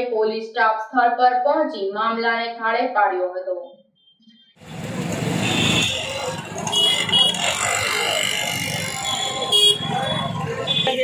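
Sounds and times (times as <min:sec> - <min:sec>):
road traffic: 0:04.5 - 0:11.0
crowd chatter: 0:04.8 - 0:11.0
vehicle horn honks: 0:05.4 - 0:07.8, 0:08.9 - 0:11.0.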